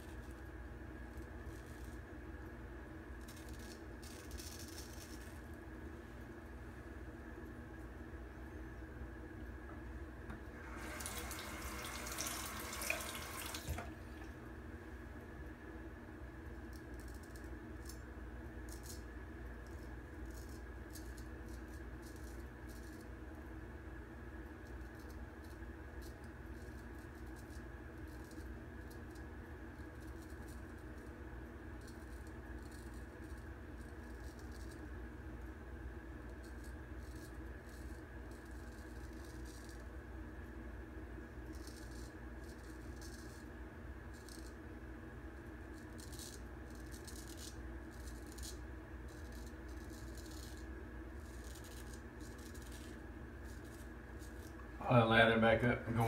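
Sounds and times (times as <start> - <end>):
steady low hum: 0.0 - 56.0
razor scraping whiskers: 51.2 - 54.6.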